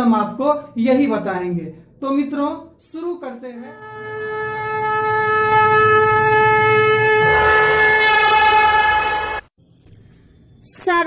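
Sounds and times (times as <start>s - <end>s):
conch shell blown: 3.8s - 9.5s.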